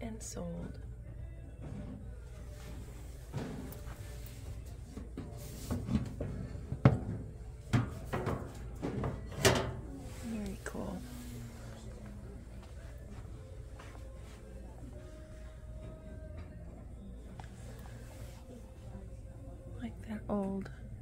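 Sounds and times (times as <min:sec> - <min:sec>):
low background hum: 0:00.0 - 0:21.0.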